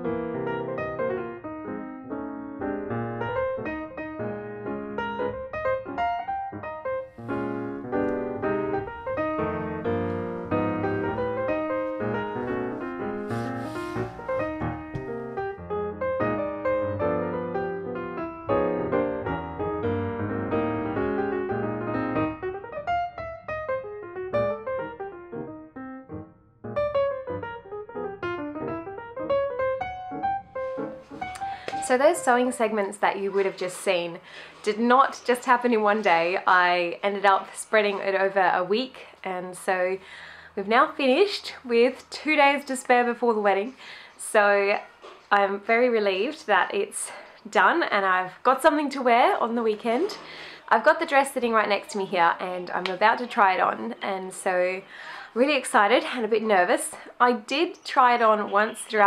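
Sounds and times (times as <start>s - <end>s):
piano music: 0.0s - 33.4s.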